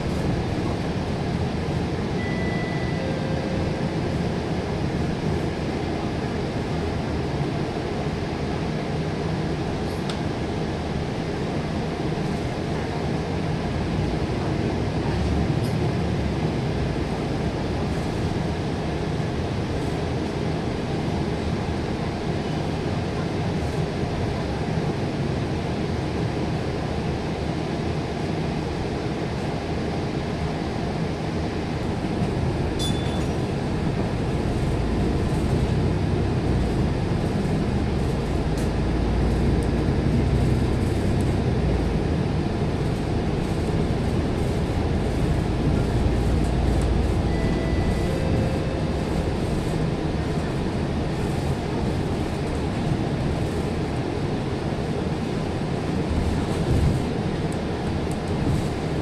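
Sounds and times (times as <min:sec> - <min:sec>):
bus engine and road rumble: 0:00.0 - 0:59.0.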